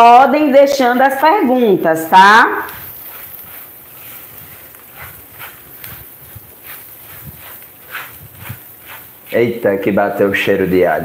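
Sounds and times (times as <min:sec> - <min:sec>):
pasta frying: 0:00.0 - 0:11.0
spatula scraping a frying pan: 0:02.6 - 0:10.6.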